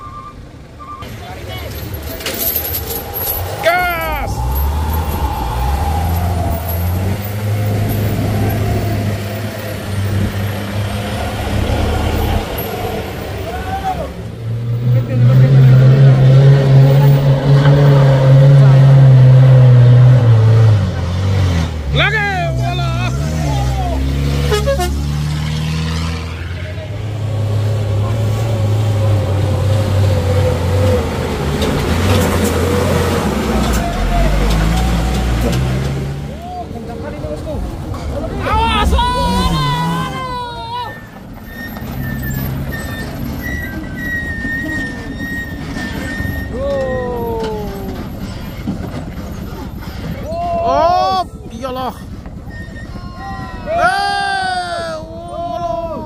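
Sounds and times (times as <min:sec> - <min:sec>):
truck engines climbing: 0:00.0 - 0:56.0.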